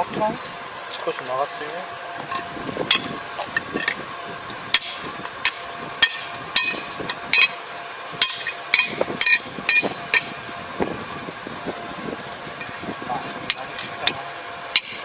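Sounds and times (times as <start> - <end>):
hammer striking metal: 4.8 - 7.6, 8.2 - 10.4, 14.8 - 15.0.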